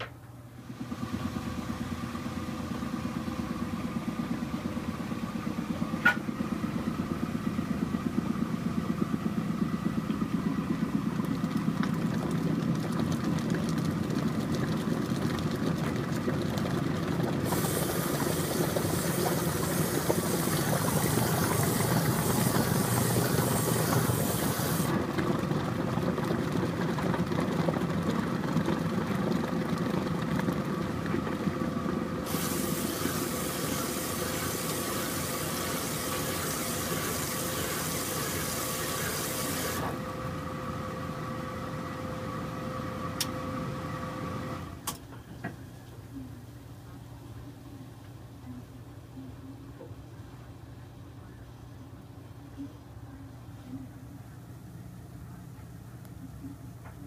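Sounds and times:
washing machine running: 0:00.0 - 0:57.0
rushing water hiss: 0:17.5 - 0:24.8, 0:32.3 - 0:39.8.

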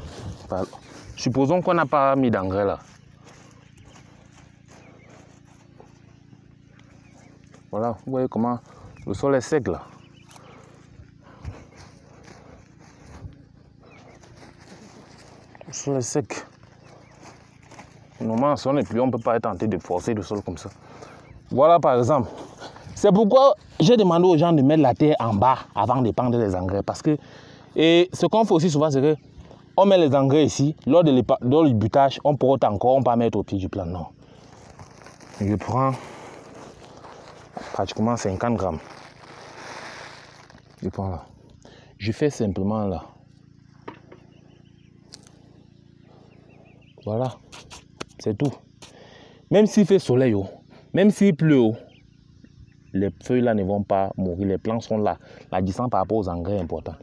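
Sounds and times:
hand scratching dry soil: 0:00.0 - 0:27.2, 0:33.7 - 0:41.4, 0:47.1 - 0:49.0
steady low hum: 0:00.0 - 0:57.0
granules rustling in sack: 0:34.3 - 0:41.0.

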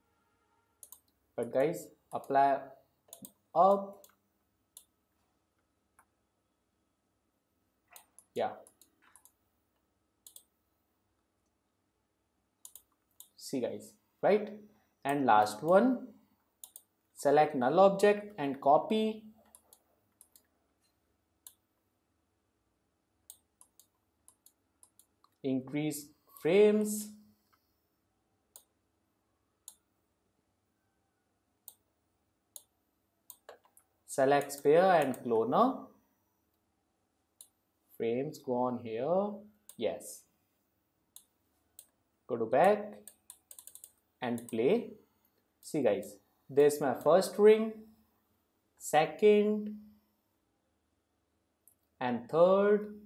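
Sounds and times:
faint computer mouse clicks: 0:00.8 - 0:01.2, 0:03.1 - 0:04.2, 0:10.2 - 0:10.5, 0:12.6 - 0:13.4, 0:16.6 - 0:16.9, 0:19.4 - 0:21.6, 0:23.3 - 0:25.4, 0:43.0 - 0:44.6.

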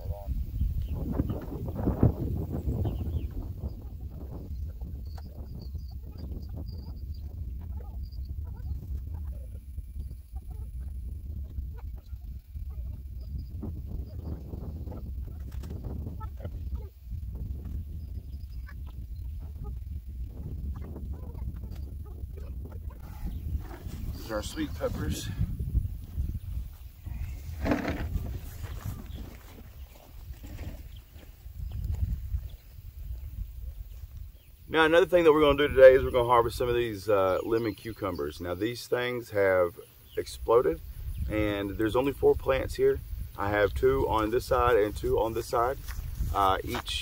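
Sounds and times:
steady low rumble: 0:00.0 - 0:29.6
plants rustling: 0:26.0 - 0:32.3.

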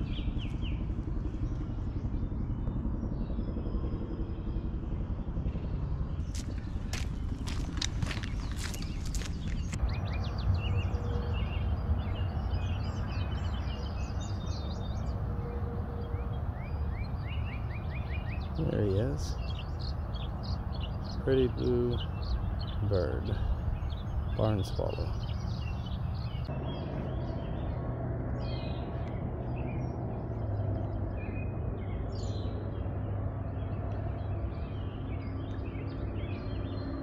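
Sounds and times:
swallow twittering: 0:00.0 - 0:27.8
small birds chirping: 0:00.0 - 0:37.0
wind rumble on microphone: 0:00.0 - 0:37.0
footsteps crunching on dry dirt: 0:06.2 - 0:09.8.

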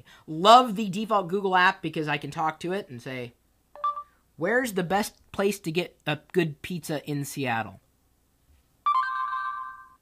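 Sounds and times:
electronic chime tone: 0:03.8 - 0:04.1, 0:08.9 - 0:10.0.

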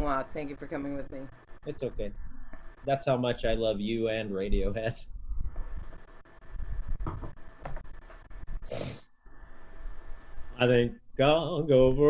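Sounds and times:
person making breathy sounds: 0:08.7 - 0:09.0.

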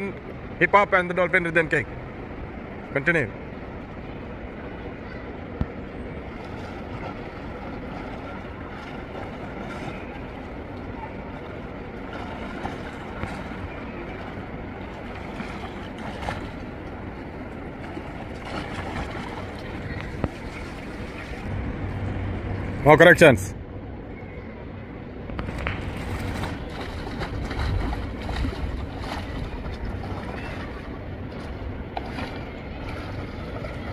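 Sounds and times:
water splashing and lapping: 0:05.4 - 0:22.8, 0:25.3 - 0:33.9
faint voices: 0:19.1 - 0:21.5.

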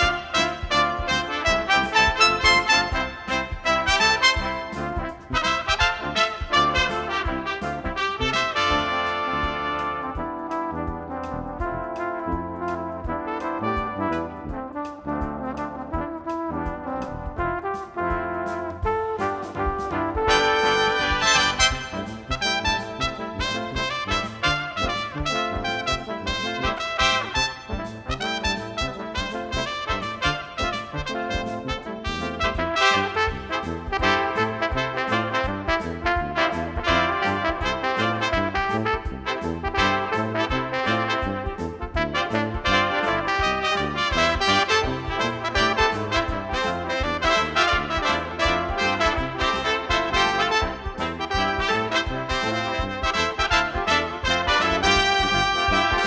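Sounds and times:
brass ensemble playing upbeat pop: 0:00.0 - 0:56.0.

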